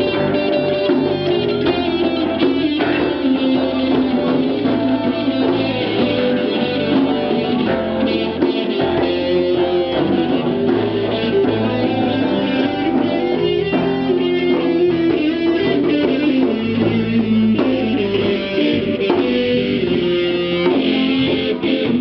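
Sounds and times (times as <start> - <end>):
rock band with electric guitars: 0.0 - 22.0.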